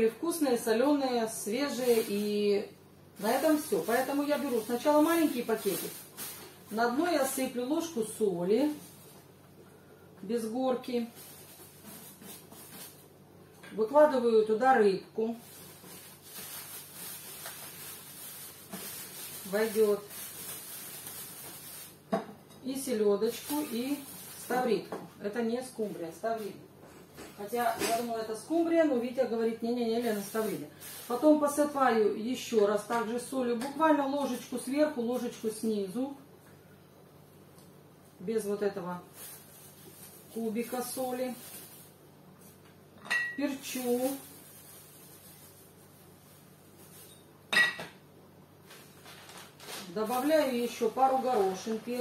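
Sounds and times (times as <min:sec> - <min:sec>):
plastic bag rustling: 0:00.8 - 0:02.6, 0:03.2 - 0:09.4, 0:10.8 - 0:13.2, 0:15.3 - 0:22.1, 0:23.2 - 0:24.9, 0:29.8 - 0:32.0, 0:38.9 - 0:42.6, 0:43.4 - 0:47.5, 0:48.6 - 0:52.0.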